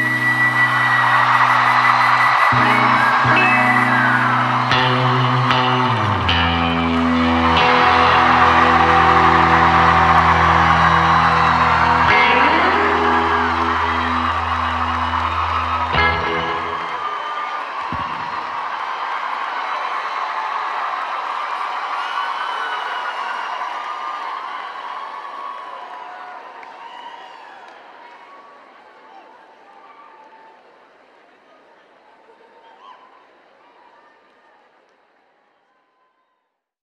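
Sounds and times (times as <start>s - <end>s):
live rock band playing: 0.0s - 17.1s
crowd whooping and cheering: 0.0s - 30.8s.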